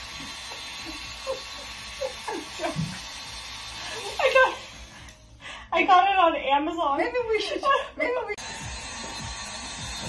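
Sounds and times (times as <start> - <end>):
hair dryer whirring: 0.0 - 5.4, 8.1 - 10.0.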